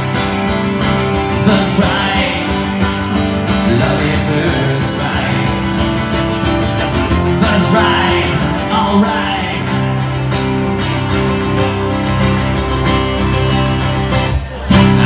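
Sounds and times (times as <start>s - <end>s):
acoustic guitar strumming chords: 0.0s - 15.0s.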